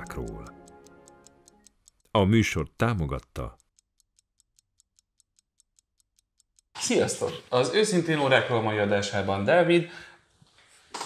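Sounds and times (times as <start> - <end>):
mechanical watch ticking: 0.0 - 9.3.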